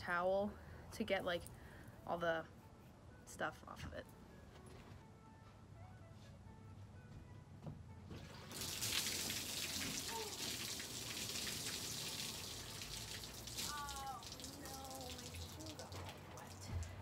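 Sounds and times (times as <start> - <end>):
water splashing onto a table: 8.4 - 17.0.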